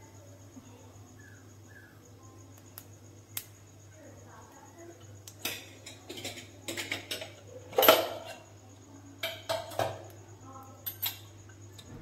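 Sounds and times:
spices frying in oil: 0.0s - 11.9s
low steady hum: 10.1s - 12.0s.

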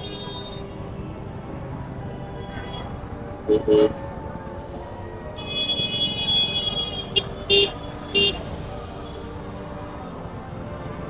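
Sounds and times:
long high-pitched horn: 0.0s - 0.8s
traffic noise: 0.0s - 11.0s.

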